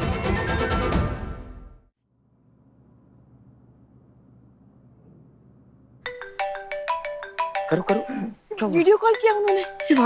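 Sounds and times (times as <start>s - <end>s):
smartphone ringtone melody: 6.1s - 8.3s, 9.0s - 10.0s.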